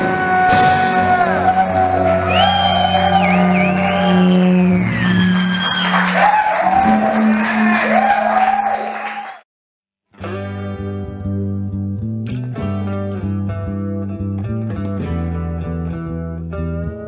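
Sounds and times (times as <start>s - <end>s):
sliding electric guitar lead: 0.0s - 5.6s, 10.2s - 17.0s
live rock band playing: 0.0s - 7.9s, 10.2s - 17.0s.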